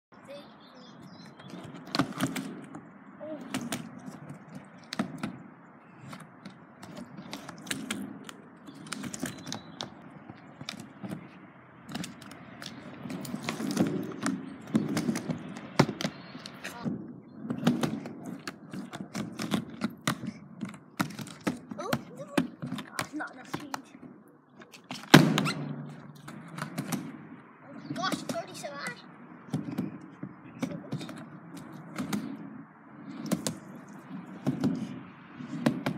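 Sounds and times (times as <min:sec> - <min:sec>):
skateboard wheels rolling on ramp: 0:01.2 - 0:24.1, 0:24.8 - 0:35.9
skateboard clacks and knocks: 0:11.9 - 0:24.1.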